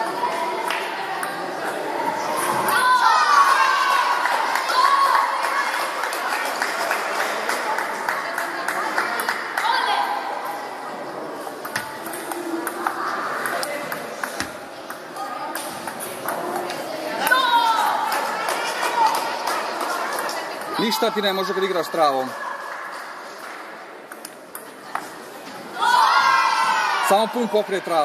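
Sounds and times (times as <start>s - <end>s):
voices murmuring in a hall: 0.0s - 28.0s.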